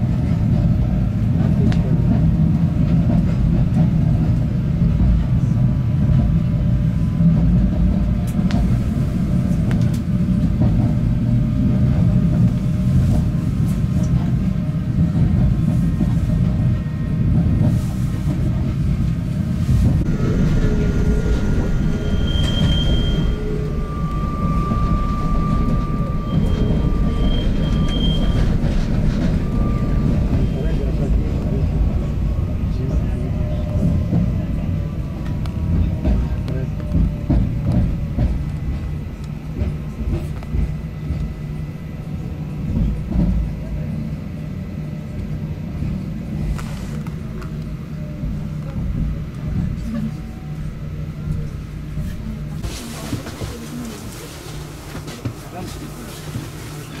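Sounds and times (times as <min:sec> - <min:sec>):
wheels rumbling on track: 0:00.0 - 0:57.0
thin high tones: 0:20.1 - 0:30.7.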